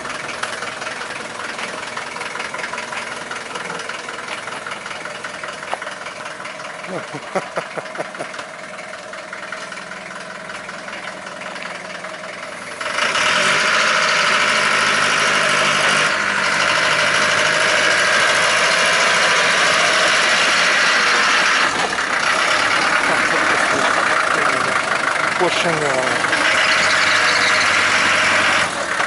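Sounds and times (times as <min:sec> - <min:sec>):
vehicle engine running: 0:00.0 - 0:29.0.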